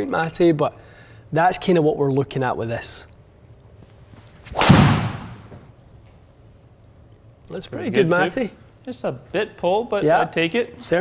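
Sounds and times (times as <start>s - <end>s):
golf ball hitting impact screen: 4.6s - 5.6s.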